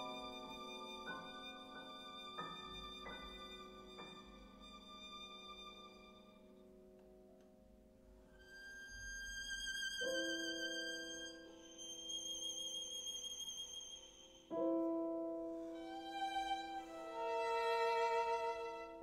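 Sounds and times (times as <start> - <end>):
piano chords ringing: 0.0 - 19.0.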